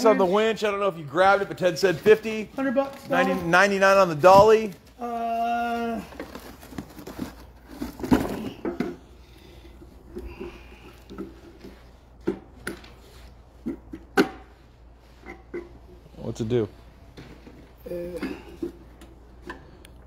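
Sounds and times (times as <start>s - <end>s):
cardboard rustling and crinkling: 1.5s - 8.8s.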